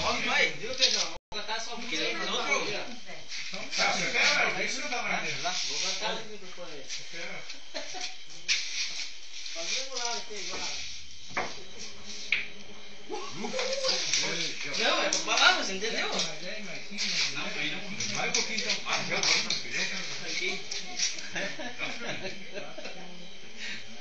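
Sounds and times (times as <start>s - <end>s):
men talking: 0.0s - 7.6s, 13.1s - 24.0s.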